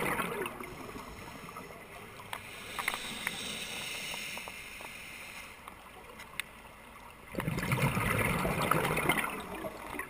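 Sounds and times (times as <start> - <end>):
muffled underwater hiss: 0.0 - 9.6
small clicks: 2.3 - 3.4.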